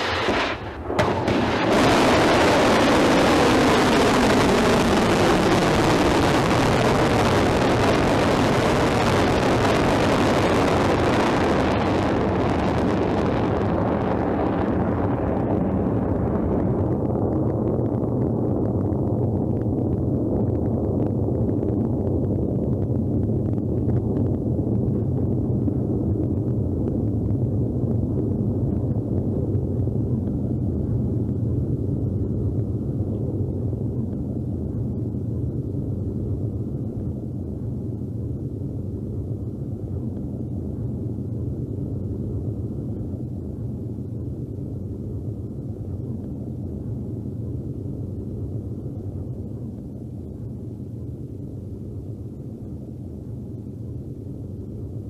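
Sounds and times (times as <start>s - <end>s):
rocket motor roaring: 0.0s - 17.2s.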